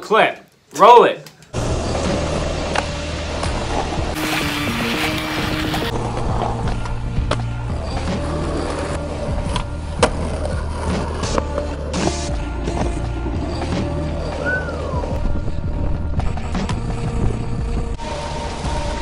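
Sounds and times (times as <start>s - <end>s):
music with deep bass line: 1.6s - 19.0s
skateboard wheels rolling on asphalt: 1.6s - 19.0s.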